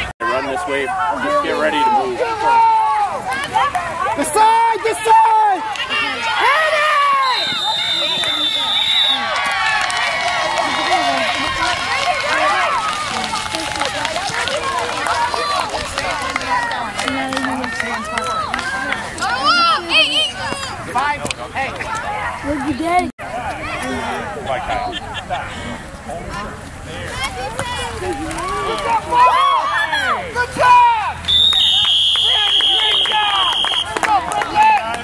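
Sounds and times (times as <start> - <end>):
spectators shouting and cheering: 0.0 - 35.0
referee's whistle blast: 7.1 - 9.3, 31.2 - 33.9.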